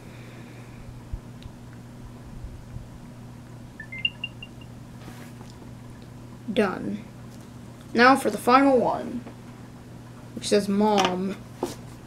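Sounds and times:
low steady hum: 0.0 - 12.0
electronic chime beeps: 3.8 - 4.7.

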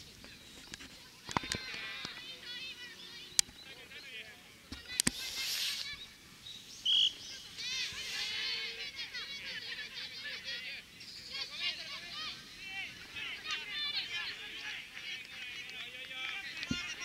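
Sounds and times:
high chirping and calling: 2.2 - 14.4.

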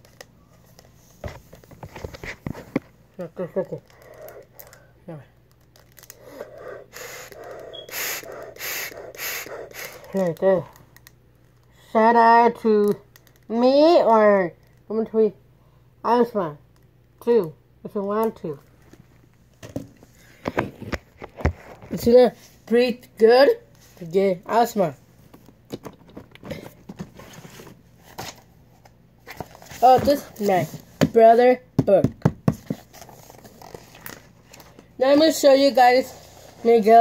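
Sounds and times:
child breathing through inhaler: 6.1 - 10.2.

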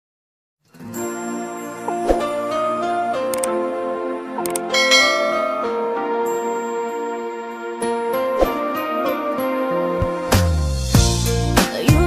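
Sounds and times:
soft music of held notes: 0.7 - 12.0
bright bell ding: 4.7 - 6.3.

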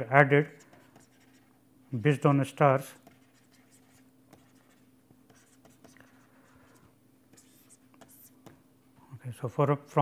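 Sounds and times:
faint steady hum: 0.0 - 10.0
stylus scratching on a tablet: 0.4 - 2.2, 2.8 - 8.6.

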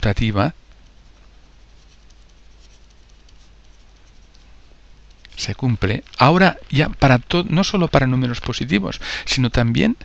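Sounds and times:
stylus scratching on tablet: 0.7 - 6.0.

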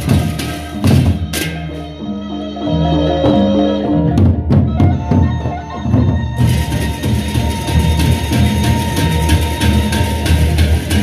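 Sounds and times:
barrel drums beating: 0.0 - 1.9, 4.1 - 11.0.

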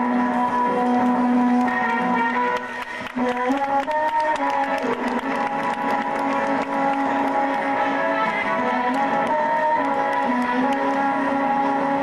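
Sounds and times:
instrumental music with held notes: 0.0 - 12.0.

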